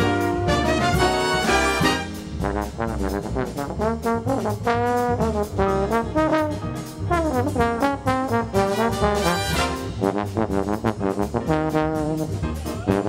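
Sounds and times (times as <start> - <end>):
bass and drums: 0.0 - 13.0
bass trombone jazz solo: 0.0 - 13.0.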